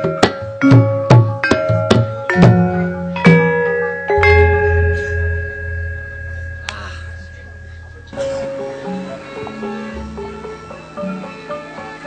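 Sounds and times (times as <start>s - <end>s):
metallophone keys struck: 0.0s - 9.7s
large gong ringing: 2.3s - 9.5s.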